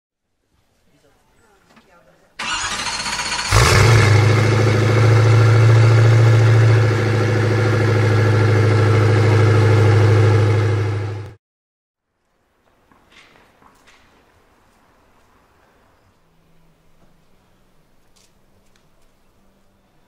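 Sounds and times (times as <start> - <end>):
engine starter cranking: 2.4 - 4.4
car engine revving and idling: 2.4 - 11.4.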